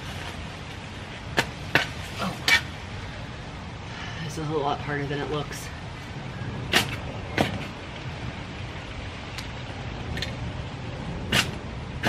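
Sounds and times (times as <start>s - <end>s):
digging tool striking sandy ground: 6.7s - 7.7s, 11.3s - 11.6s.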